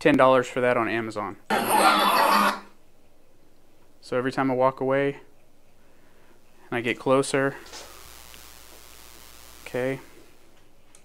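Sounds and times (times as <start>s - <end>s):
faint room hum: 0.0s - 11.0s.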